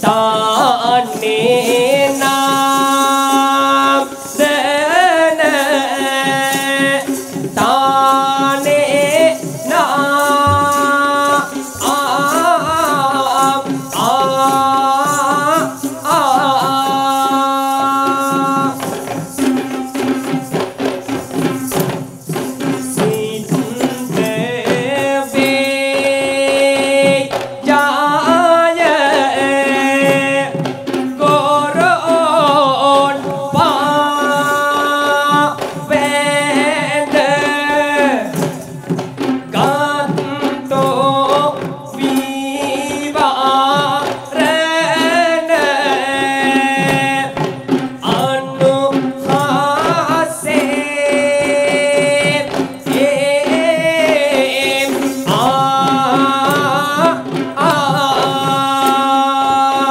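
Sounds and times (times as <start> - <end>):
fast drum beat: 0.0 - 59.9
person singing: 0.0 - 59.9.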